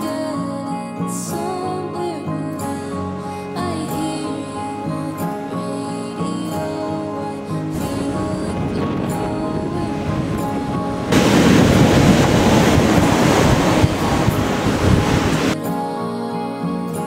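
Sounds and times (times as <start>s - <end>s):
background music: 0.0s - 17.0s
breaking wave and churning surf: 7.6s - 15.6s.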